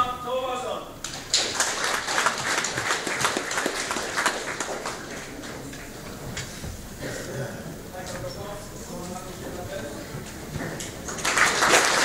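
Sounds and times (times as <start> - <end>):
group clapping: 1.0 - 6.5, 10.6 - 12.0.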